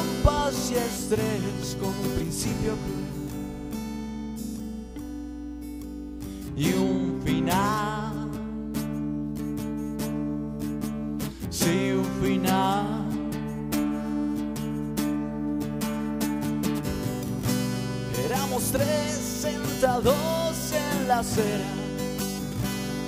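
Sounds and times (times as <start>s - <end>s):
strummed acoustic guitar: 0.0s - 23.0s.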